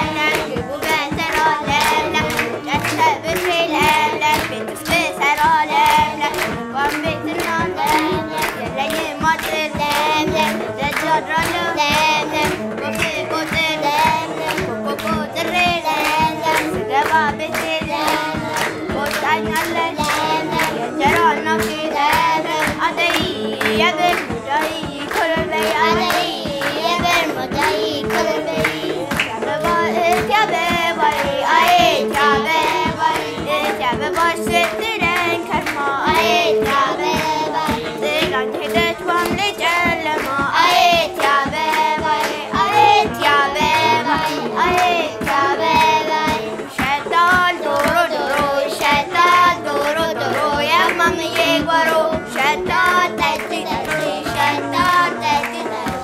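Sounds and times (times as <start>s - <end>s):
girls singing together: 0.0s - 56.0s
rhythmic hand-clapping: 0.0s - 56.0s.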